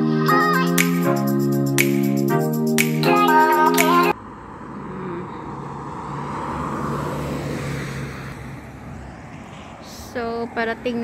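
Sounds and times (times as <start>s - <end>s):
car passing: 4.1s - 11.0s.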